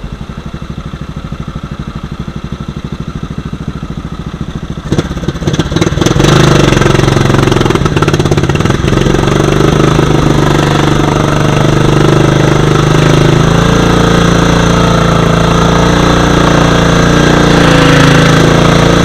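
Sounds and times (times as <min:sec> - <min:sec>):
riding mower engine: 0:00.0 - 0:19.0.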